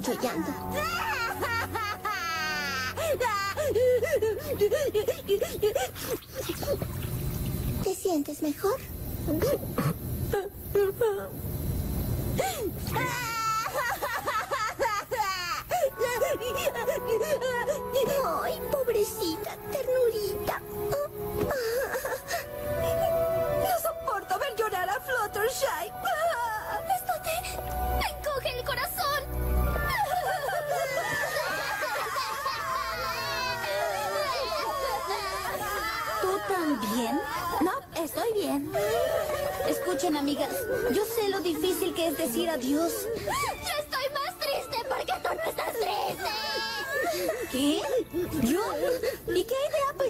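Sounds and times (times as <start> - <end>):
cartoon voice wailing and sobbing: 0.0 - 6.2, 12.9 - 24.5, 25.6 - 29.2, 29.8 - 50.0.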